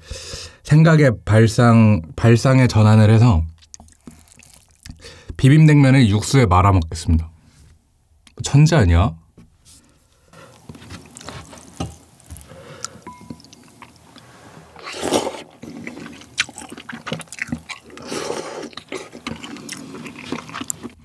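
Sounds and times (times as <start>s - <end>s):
person slurping noodles: 3.9s - 5.1s, 13.8s - 21.0s.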